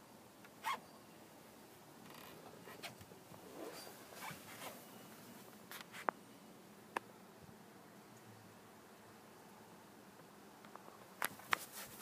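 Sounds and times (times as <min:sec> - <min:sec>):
small scrapes and clicks: 0:10.7 - 0:12.0.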